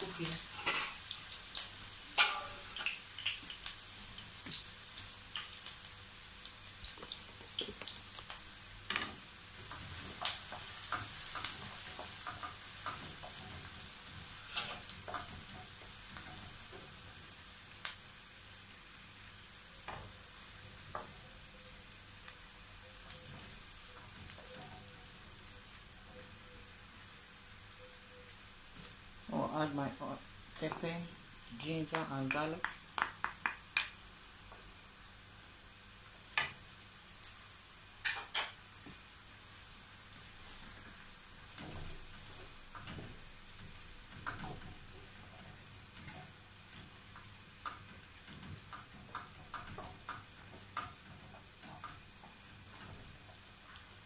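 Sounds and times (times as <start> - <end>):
onion sizzling in oil: 0.0 - 54.0
wooden spoon stirring: 6.9 - 17.2.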